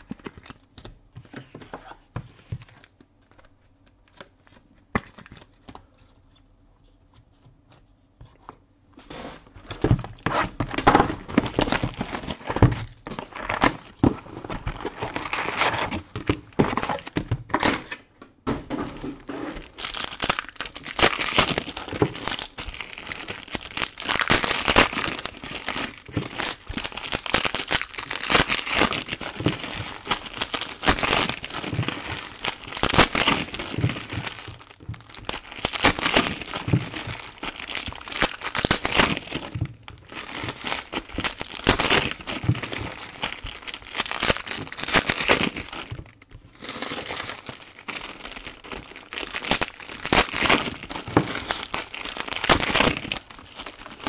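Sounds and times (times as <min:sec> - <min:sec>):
card wrappers tearing and crinkling: 0:00.0 - 0:00.7, 0:02.7 - 0:05.8, 0:09.6 - 0:18.0, 0:18.7 - 0:54.0.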